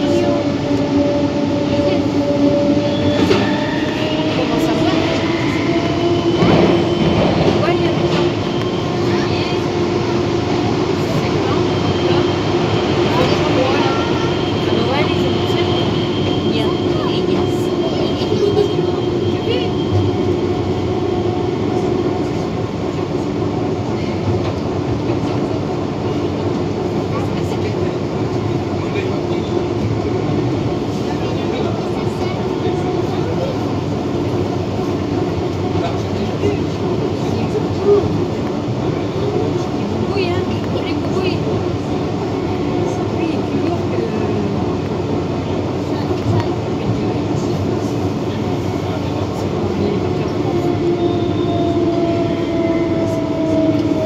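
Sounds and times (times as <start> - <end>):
train running gear rumbling: 0.0 - 54.0.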